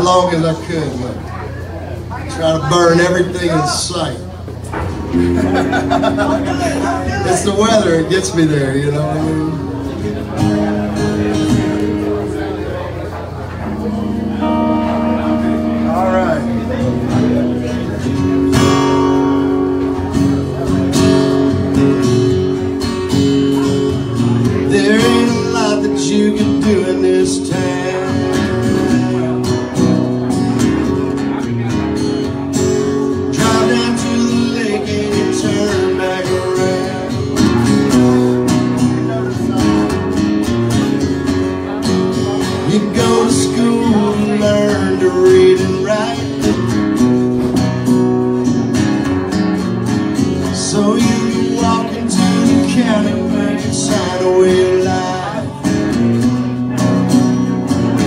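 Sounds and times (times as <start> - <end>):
acoustic guitars strumming: 0.0 - 58.0.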